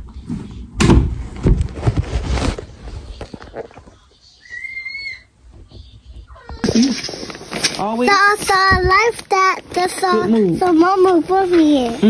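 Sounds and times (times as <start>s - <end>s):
child squealing: 4.4s - 5.3s
child whining cries: 4.4s - 5.3s, 6.3s - 6.9s.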